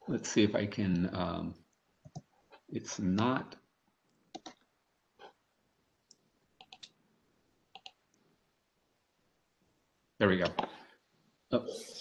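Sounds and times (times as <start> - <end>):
computer mouse clicks: 2.0 - 2.3, 4.1 - 5.4, 6.0 - 7.0, 7.7 - 8.0.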